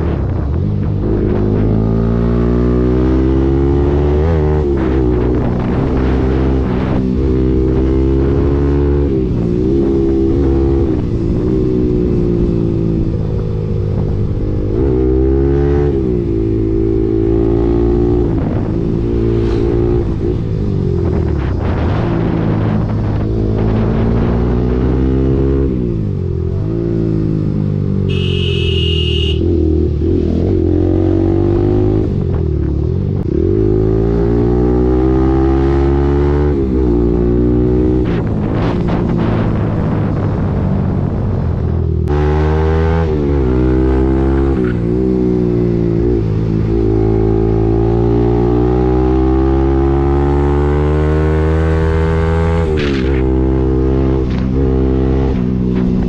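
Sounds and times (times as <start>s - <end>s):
motorcycle engine revving: 0.0s - 56.0s
short high beep: 28.1s - 29.5s.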